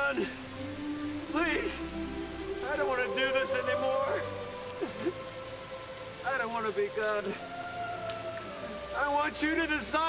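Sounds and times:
rain falling: 0.0 - 10.0
man crying: 2.8 - 5.3.

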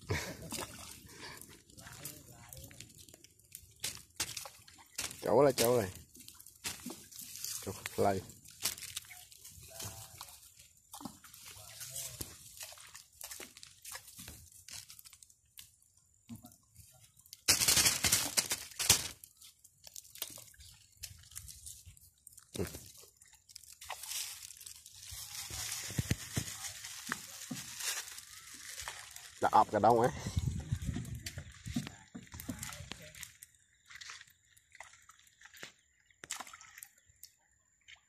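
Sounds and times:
rustling and crunching: 0.0 - 15.8, 17.3 - 34.3
twig fire crackling and popping: 0.1 - 9.9, 12.1 - 16.1, 17.2 - 33.8.

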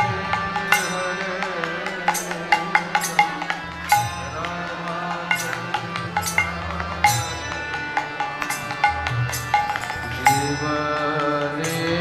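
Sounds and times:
harmonium drone: 0.0 - 12.0
sharp percussion strikes: 0.0 - 12.0.

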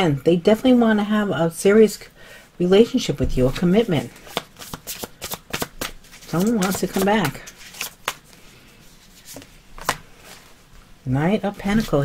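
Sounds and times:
card rustling: 3.8 - 10.6.

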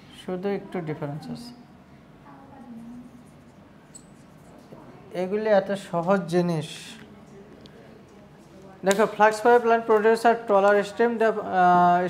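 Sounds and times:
marker squeak: 3.8 - 4.4.

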